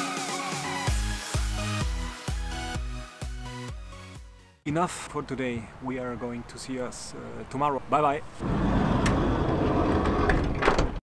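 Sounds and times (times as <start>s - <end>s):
sliding van door rumbling: 8.4s - 11.0s.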